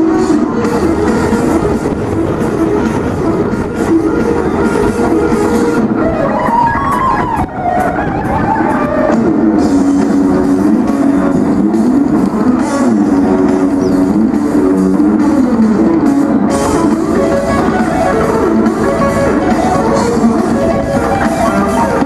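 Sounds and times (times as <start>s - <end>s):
electric guitar solo: 1.9s - 22.0s.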